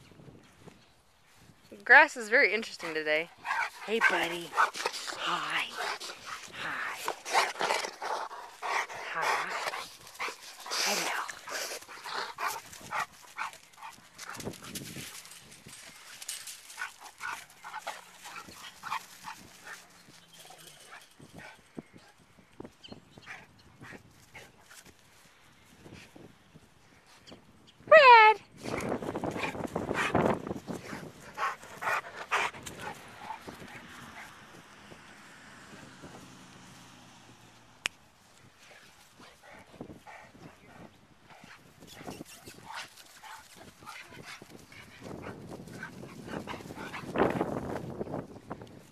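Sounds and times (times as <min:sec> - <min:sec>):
dogs moving in grass: 0:02.1 - 0:21.4.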